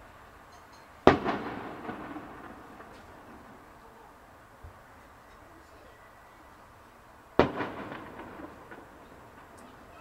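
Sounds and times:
faint firework pops: 1.0 - 3.6, 7.4 - 9.8
firework bang with rumbling echo: 1.0 - 3.9, 7.4 - 10.0.

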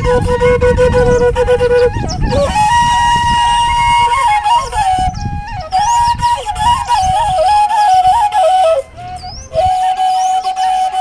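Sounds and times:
bamboo flute playing: 0.0 - 11.0.

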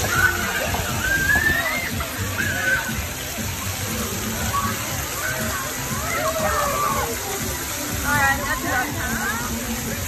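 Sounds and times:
children calling out: 0.0 - 3.0, 4.2 - 7.5
water spouts splashing on ground: 0.0 - 10.0.

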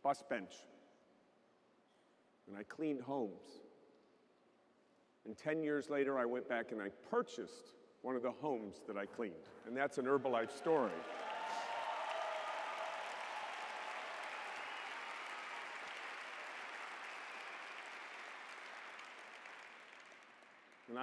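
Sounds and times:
large audience applauding: 10.2 - 21.0.

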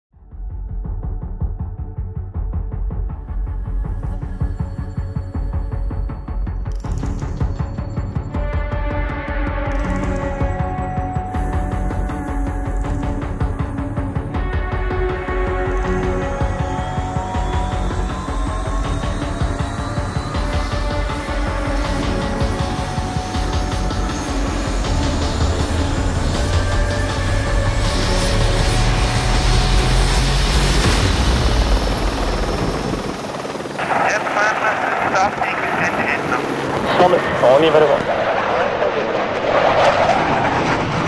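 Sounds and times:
soundtrack music: 0.3 - 38.0
aircraft engine rumble: 22.5 - 41.0
voice over radio: 33.8 - 38.2.

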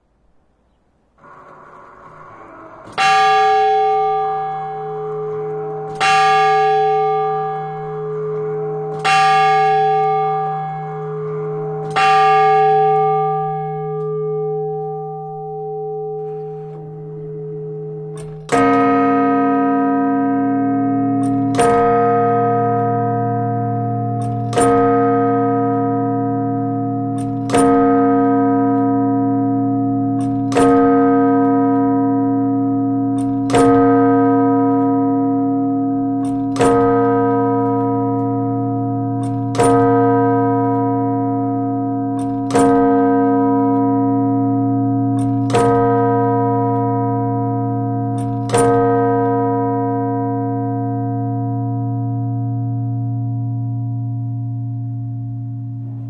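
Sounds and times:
deep church bell striking: 0.0 - 56.0
higher church bell striking: 0.8 - 56.0.

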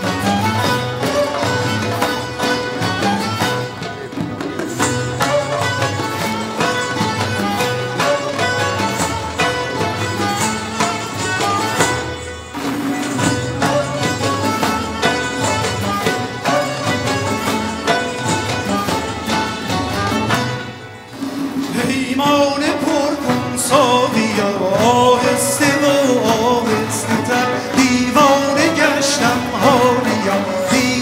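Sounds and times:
bowed string notes: 0.0 - 31.0
plucked lute notes: 0.0 - 31.0
man singing ornamented vocal line: 21.7 - 31.0.

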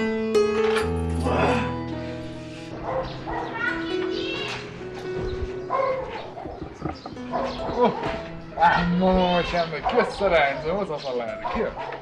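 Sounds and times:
background music: 0.0 - 12.0
dog barking: 2.8 - 3.8, 5.7 - 8.9, 9.8 - 12.0.

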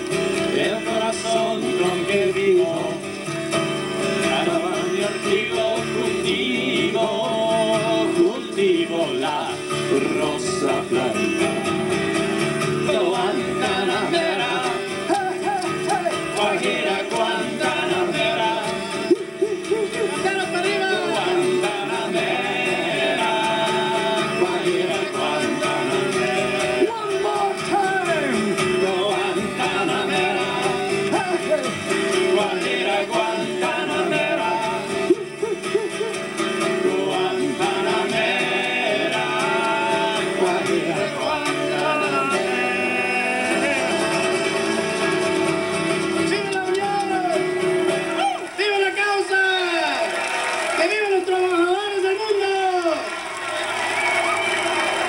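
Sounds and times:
men singing folk music: 0.0 - 48.2
acoustic guitar: 0.0 - 55.0.

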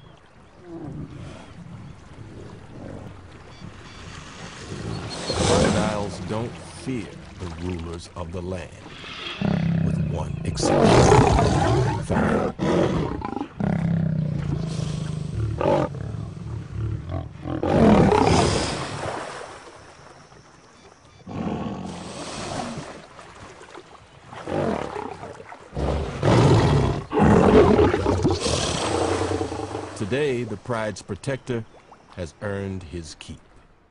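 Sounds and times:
lion growling and roaring: 4.6 - 6.3, 9.4 - 18.6, 21.3 - 22.9, 24.4 - 30.0.

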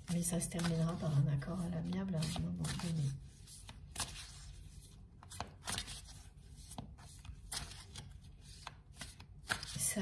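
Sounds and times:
woman speaking: 0.0 - 3.2, 9.8 - 10.0
cards being shuffled: 0.1 - 10.0.

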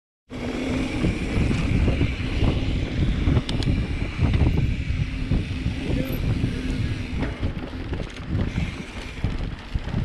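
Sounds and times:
bike tyres rumbling on dirt: 0.3 - 10.0
wind on microphone: 0.3 - 10.0
sharp clicks: 3.4 - 3.8.

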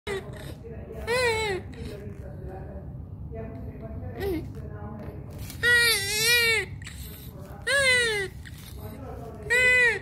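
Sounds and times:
newborn baby crying: 5.6 - 10.0.

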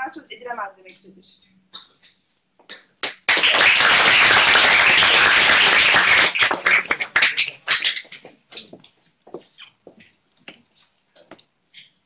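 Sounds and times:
audience applauding: 3.0 - 8.2.

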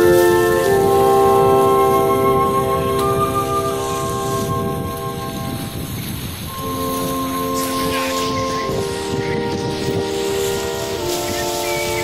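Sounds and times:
bell-like held chords: 0.0 - 12.0
steady rushing noise: 0.0 - 12.0.

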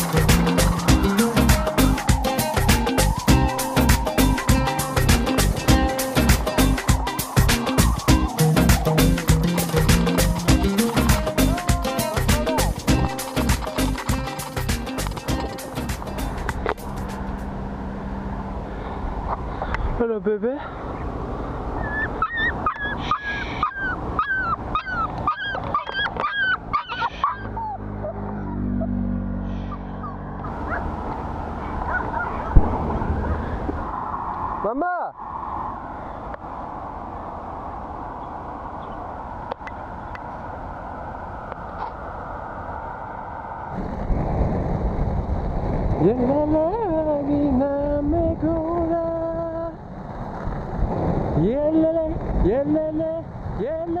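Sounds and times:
low hum: 0.0 - 11.6, 12.2 - 19.6, 27.4 - 34.6
background music with a beat: 0.0 - 17.3
wind on microphone: 0.0 - 17.3, 30.4 - 54.0
wheels rolling on asphalt: 24.0 - 33.8, 49.8 - 51.4
skate wheels rolling on asphalt: 50.0 - 51.4.

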